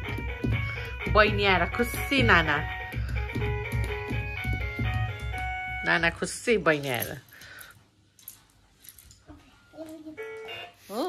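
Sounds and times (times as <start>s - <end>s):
electronic toy piano melody: 10.1s - 11.0s.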